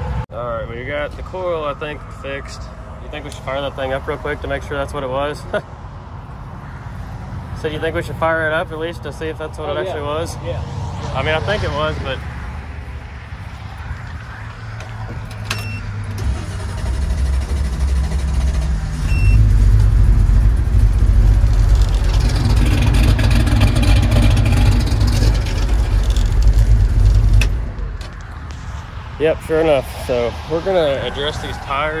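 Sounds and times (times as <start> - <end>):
pickup engine rumbling: 0.0 - 32.0.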